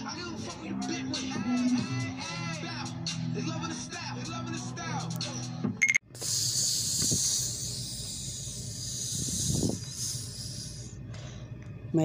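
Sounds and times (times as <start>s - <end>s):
high-pitched hiss: 6.2s - 11.0s.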